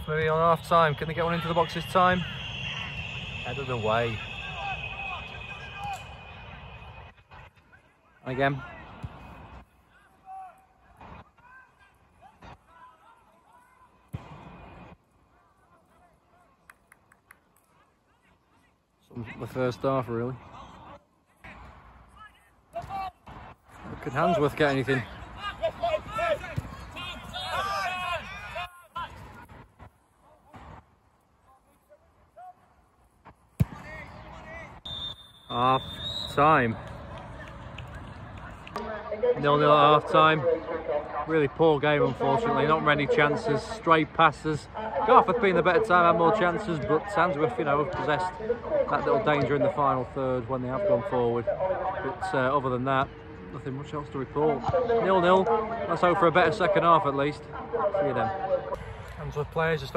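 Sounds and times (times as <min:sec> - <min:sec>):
distant players shouting: 0:00.0 - 0:14.7, 0:24.0 - 0:29.5
steady outdoor hiss: 0:00.0 - 0:59.9
football kick thud: 0:33.6 - 0:34.0.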